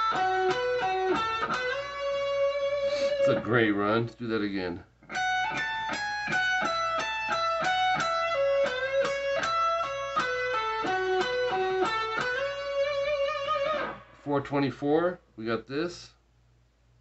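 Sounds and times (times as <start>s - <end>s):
electric guitar lead run: 0.0s - 3.6s, 5.1s - 14.2s.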